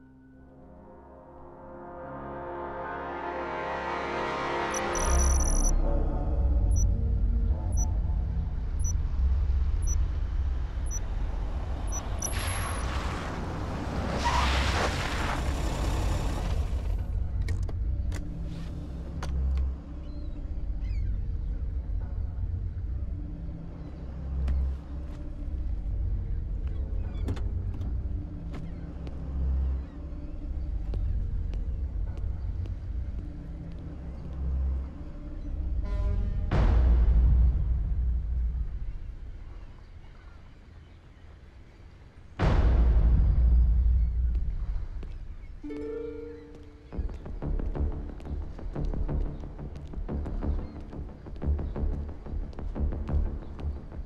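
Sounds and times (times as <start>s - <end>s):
high electronic tick: 4.8s - 5.7s
low rumble: 25.3s - 39.7s, 42.4s - 45.6s.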